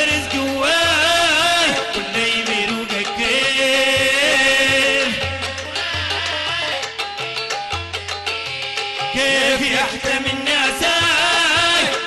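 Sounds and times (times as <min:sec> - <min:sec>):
men singing long held notes: 0:09.1 - 0:12.0.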